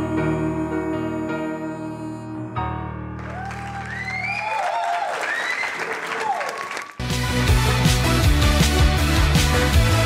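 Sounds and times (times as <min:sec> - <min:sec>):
audience applauding: 0:03.2 - 0:07.6.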